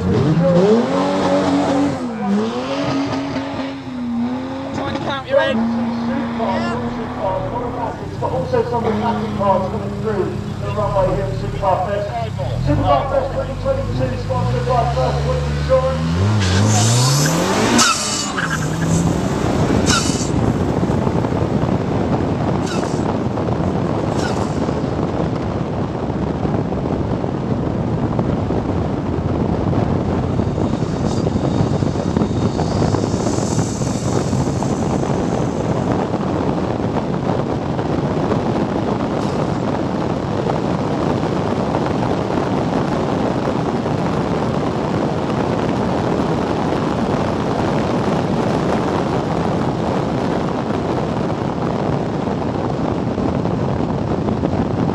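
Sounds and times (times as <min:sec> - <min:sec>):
car engine accelerating: 0:00.0 - 0:51.0
wind rushing: 0:00.0 - 0:54.9.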